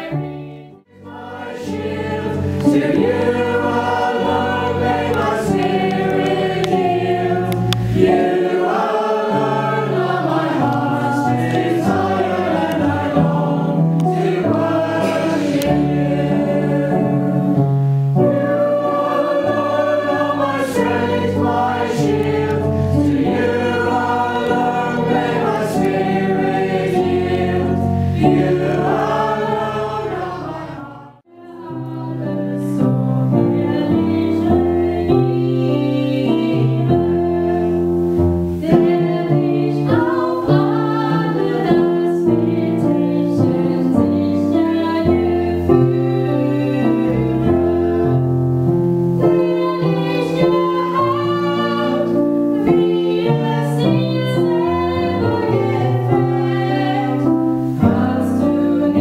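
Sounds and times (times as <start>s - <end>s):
keyboard chords: 0.0s - 59.0s
man and woman singing: 49.2s - 59.0s.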